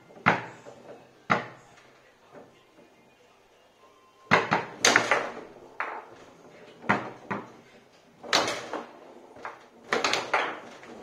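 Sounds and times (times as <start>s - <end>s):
foosball ball clacking: 0.0s - 2.5s, 4.3s - 11.0s.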